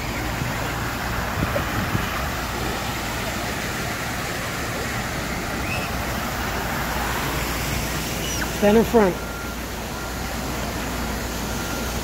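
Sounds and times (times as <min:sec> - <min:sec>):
distant traffic hum: 0:00.0 - 0:12.0.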